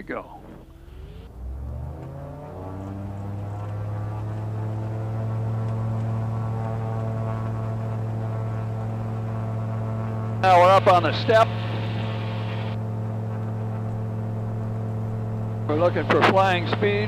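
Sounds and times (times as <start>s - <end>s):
aircraft engine drone: 0.0s - 17.0s.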